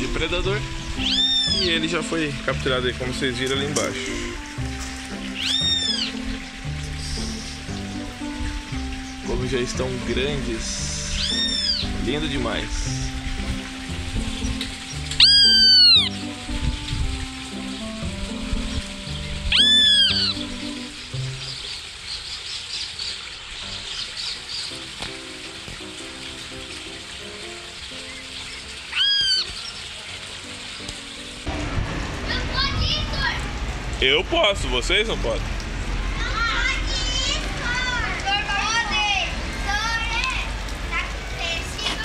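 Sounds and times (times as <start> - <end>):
background music: 0.0 - 21.7, 23.7 - 33.4, 34.0 - 42.0
bird calling loudly: 0.8 - 9.3, 11.0 - 12.0, 12.8 - 16.4, 17.5 - 24.9, 27.9 - 29.9
children's voices: 32.2 - 33.6, 35.9 - 42.0.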